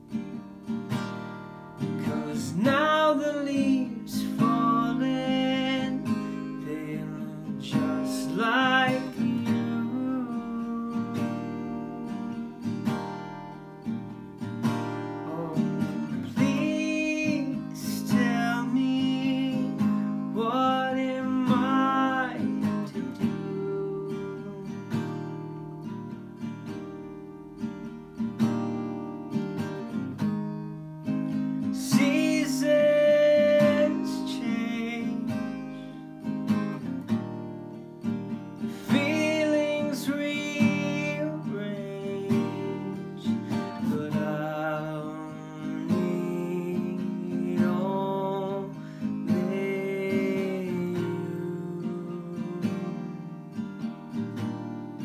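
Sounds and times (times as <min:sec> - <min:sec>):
strummed acoustic guitar: 0:00.0 - 0:55.0
man singing: 0:01.8 - 0:12.9, 0:15.2 - 0:25.1, 0:31.5 - 0:36.0, 0:38.6 - 0:53.5.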